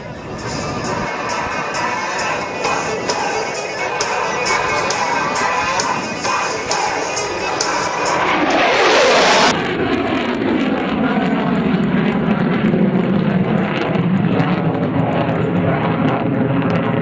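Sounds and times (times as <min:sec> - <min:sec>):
jet engines in flight: 0:00.0 - 0:17.0.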